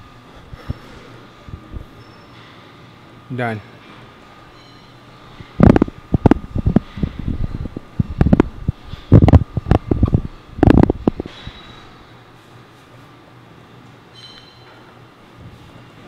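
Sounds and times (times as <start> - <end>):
microphone rumbling bumps: 5.6 - 11.3.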